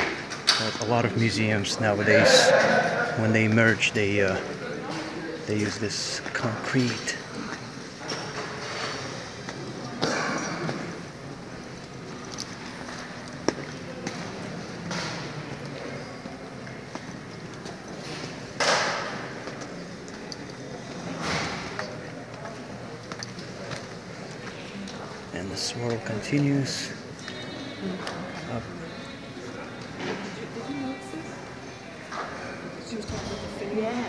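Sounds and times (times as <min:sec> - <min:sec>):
indistinct background voices: 0:00.0 - 0:34.0.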